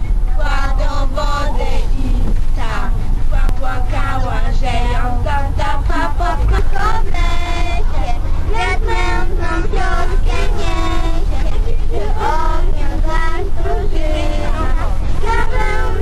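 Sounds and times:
low rumble of a moving bus: 0:00.0 - 0:16.0
girls singing into a microphone: 0:00.2 - 0:16.0.

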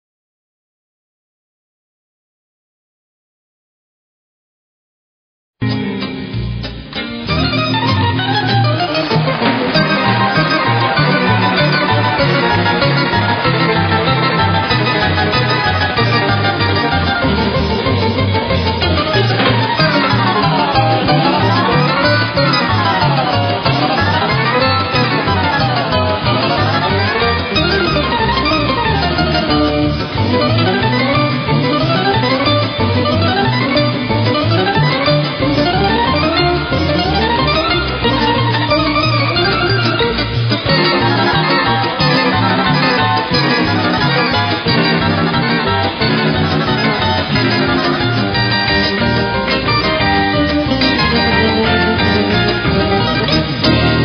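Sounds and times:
electric guitar fast runs: 0:06.2 - 0:54.0
pulsing low notes: 0:07.4 - 0:54.0.

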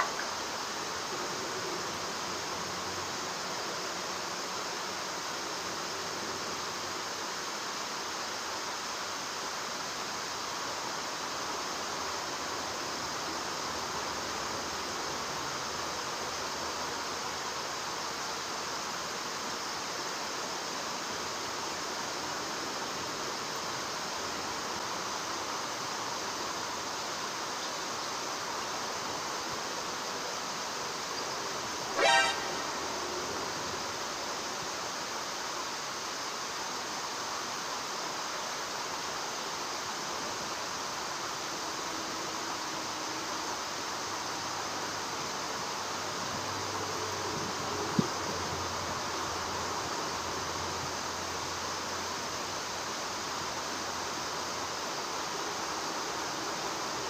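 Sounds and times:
flowing river water: 0:00.0 - 0:57.0.

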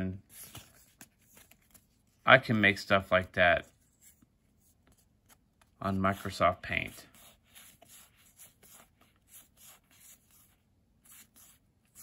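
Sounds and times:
trading cards sliding and flicking: 0:00.3 - 0:02.0
man speaking: 0:02.3 - 0:03.7, 0:05.8 - 0:07.1.

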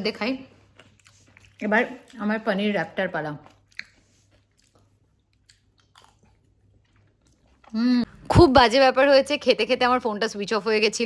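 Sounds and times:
woman speaking: 0:00.0 - 0:00.5, 0:01.6 - 0:03.5, 0:07.7 - 0:11.0.

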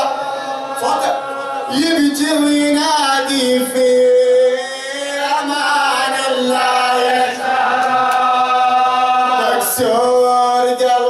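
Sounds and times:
man chanting through a microphone: 0:00.0 - 0:07.4, 0:08.3 - 0:11.0.

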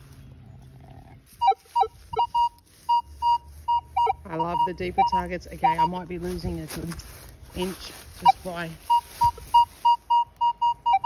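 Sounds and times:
metal detector lower tones: 0:01.4 - 0:06.0, 0:08.2 - 0:11.0
metal detector short high beeps: 0:01.4 - 0:06.0, 0:08.2 - 0:11.0.

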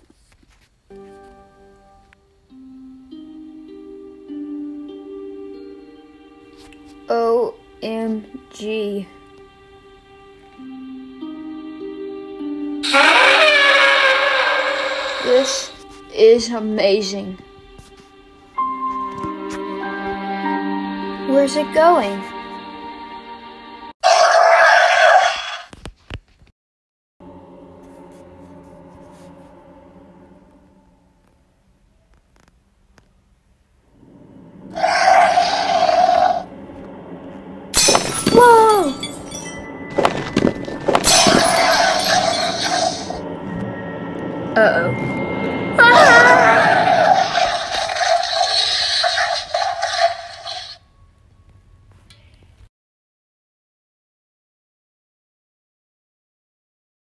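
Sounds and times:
soft background music: 0:00.1 - 0:24.0, 0:27.2 - 0:32.5, 0:36.4 - 0:47.5
short high scream: 0:12.8 - 0:15.7
dinosaur bellow: 0:12.8 - 0:15.8, 0:24.0 - 0:25.7, 0:34.7 - 0:36.5, 0:45.8 - 0:50.7
crash with breaking glass: 0:37.8 - 0:43.2.

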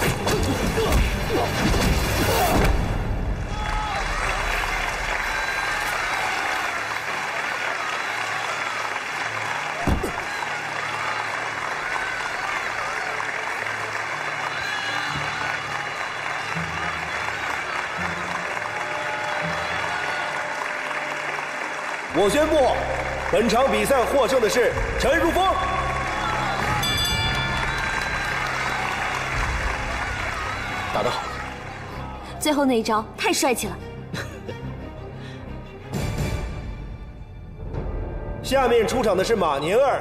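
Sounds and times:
crowd applauding and cheering: 0:03.0 - 0:33.2.

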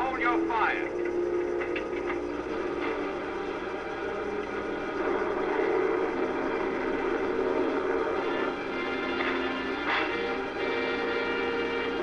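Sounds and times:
aircraft engines droning: 0:00.0 - 0:12.0.

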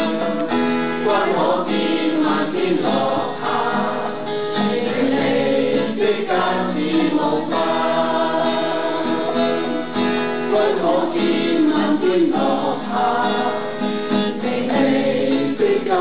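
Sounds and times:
mixed choir singing: 0:00.0 - 0:16.0
strummed acoustic guitar: 0:00.0 - 0:16.0.

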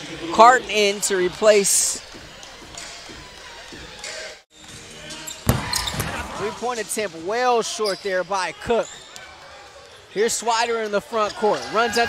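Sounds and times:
court ambience: 0:04.7 - 0:12.0
loud basketball bounce: 0:05.4 - 0:06.4.

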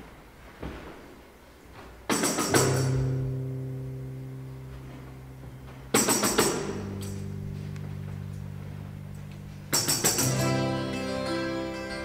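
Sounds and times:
acoustic guitar chord ringing: 0:02.7 - 0:12.0.

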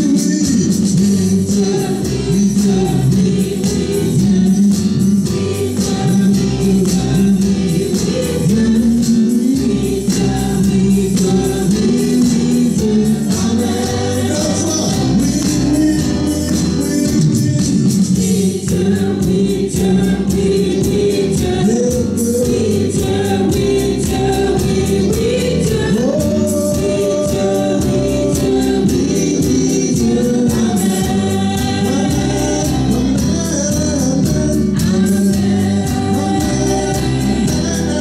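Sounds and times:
group singing gospel song: 0:00.0 - 0:38.0
keyboard accompaniment: 0:00.0 - 0:38.0.

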